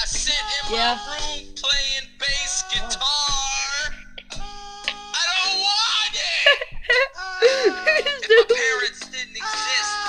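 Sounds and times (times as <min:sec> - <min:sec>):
girl yelling in wailing cries: 0:00.7 - 0:01.2.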